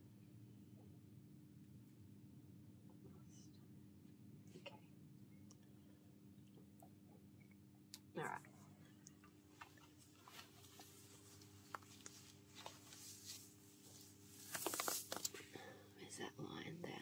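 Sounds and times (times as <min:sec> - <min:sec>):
steady low hum: 0:00.0 - 0:17.0
crackly rustle: 0:09.2 - 0:15.7
nylon stocking rustling: 0:10.1 - 0:15.4.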